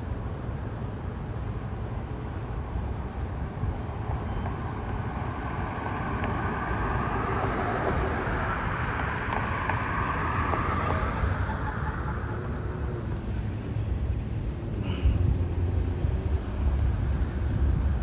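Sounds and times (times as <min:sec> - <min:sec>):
steady low rumble: 0:00.0 - 0:18.0
car driving slowly past: 0:01.4 - 0:18.0.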